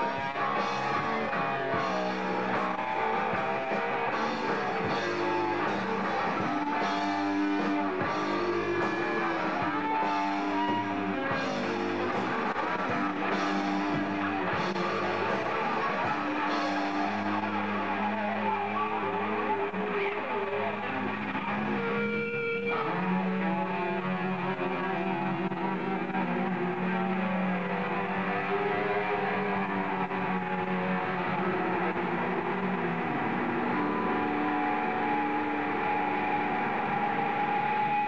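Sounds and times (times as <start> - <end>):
distorted electric guitar bending notes: 0.0 - 38.0
live rock band playing: 0.0 - 38.0.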